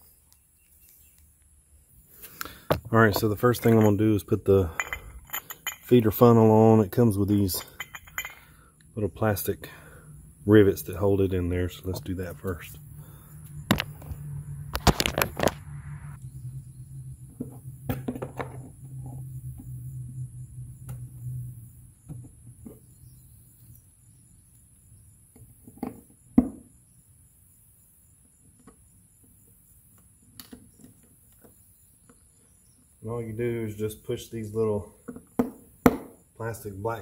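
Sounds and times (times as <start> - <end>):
low steady hum: 1.3 - 25.4.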